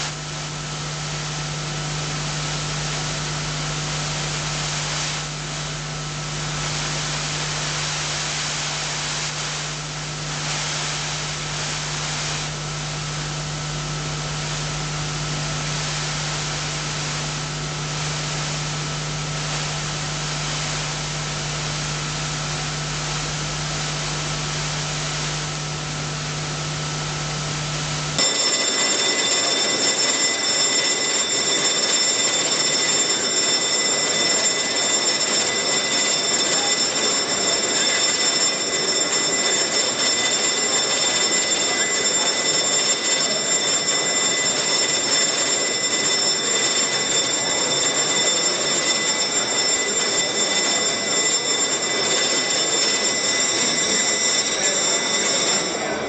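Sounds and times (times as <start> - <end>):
electric bell ringing: 28.2 - 56.0.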